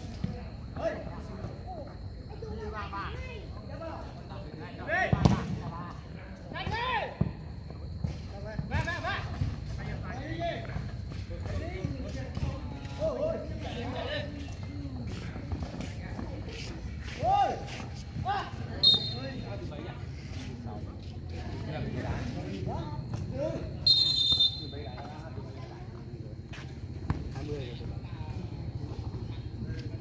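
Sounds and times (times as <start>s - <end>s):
ball kicks: 5.1s - 5.7s, 27.0s - 27.4s.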